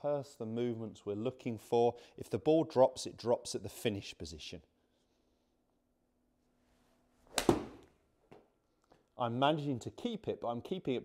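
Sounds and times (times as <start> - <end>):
golf club striking ball: 7.3 - 7.9.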